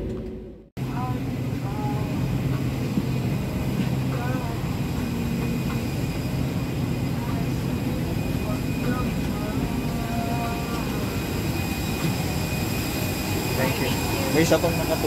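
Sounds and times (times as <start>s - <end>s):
airliner cabin hum: 0.0s - 15.0s
faint passenger voices: 0.8s - 15.0s.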